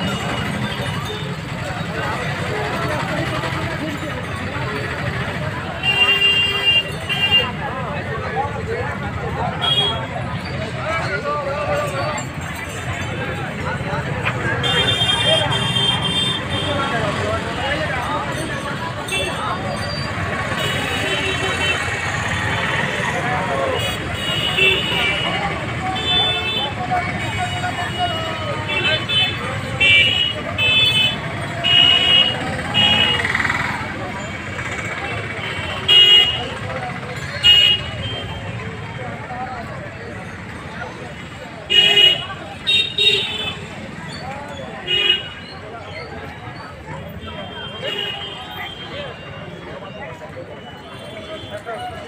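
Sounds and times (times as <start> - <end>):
crowd chatter: 0.0 - 52.0
traffic noise: 0.0 - 52.0
vehicle horns tooting: 5.0 - 7.6, 9.5 - 10.2, 14.2 - 18.0, 19.0 - 38.7, 41.6 - 43.8, 44.7 - 45.6, 47.1 - 52.0.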